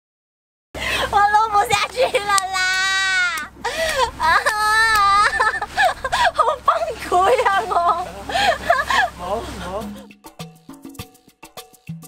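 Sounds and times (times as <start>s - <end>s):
young woman laughing: 1.9s - 9.2s.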